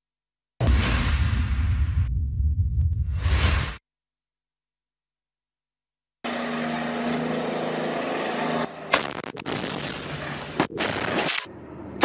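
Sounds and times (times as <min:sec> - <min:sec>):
sharp bang: 0:00.6 - 0:02.1.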